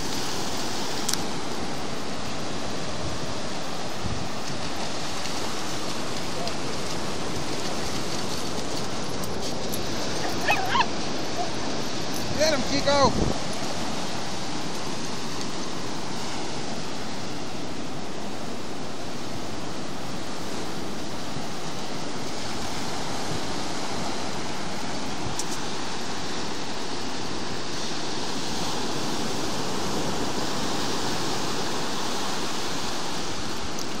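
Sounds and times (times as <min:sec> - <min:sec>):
ocean surf breaking: 0:00.0 - 0:34.0.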